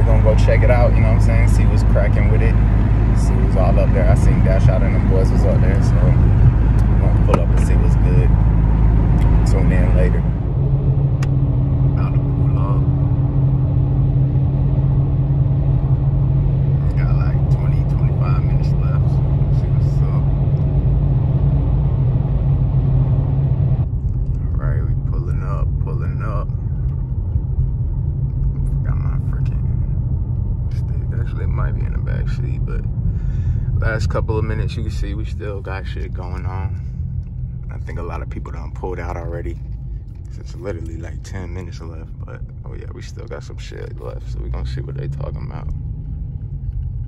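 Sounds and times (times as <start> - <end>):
engine and road drone: 0.0 - 47.0
steady hum: 0.0 - 47.0.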